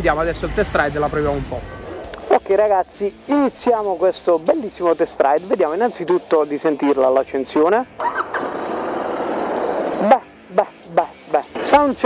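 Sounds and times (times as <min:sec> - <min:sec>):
motorcycle engine starting and idling: 0:08.0 - 0:10.0.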